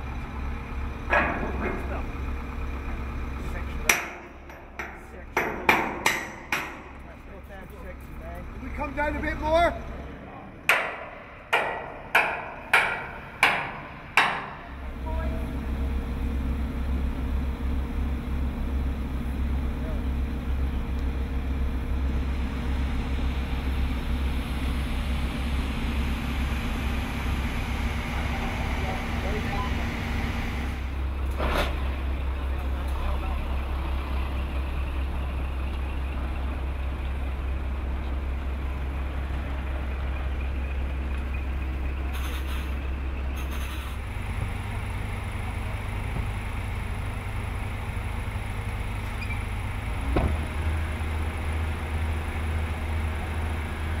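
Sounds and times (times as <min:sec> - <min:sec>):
heavy machine engine droning: 0:00.0 - 0:54.0.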